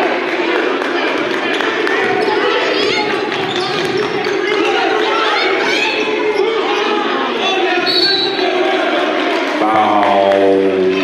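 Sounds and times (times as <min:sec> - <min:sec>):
hubbub of voices: 0:00.0 - 0:11.0.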